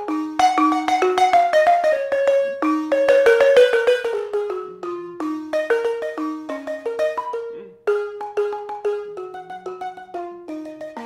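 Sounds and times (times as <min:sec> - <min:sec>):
balafon notes played with mallets: 0:00.0 - 0:11.0.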